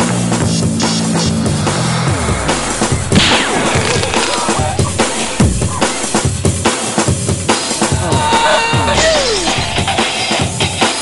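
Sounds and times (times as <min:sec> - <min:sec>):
music with fast drum beat: 0:00.0 - 0:11.0.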